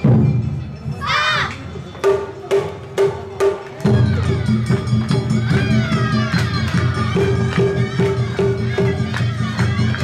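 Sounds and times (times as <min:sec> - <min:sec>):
festival band playing: 0:00.0 - 0:10.0.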